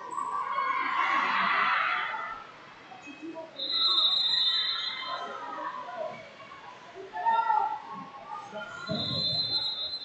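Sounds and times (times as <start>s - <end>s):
hall chatter: 0.0s - 10.0s.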